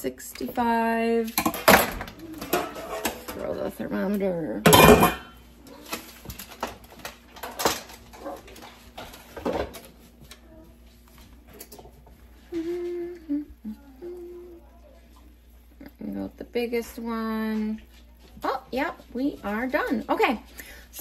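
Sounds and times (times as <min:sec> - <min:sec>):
kitchen utensils knocking and clinking: 0:01.2 - 0:03.8, 0:04.6 - 0:05.4
person humming: 0:12.5 - 0:14.8.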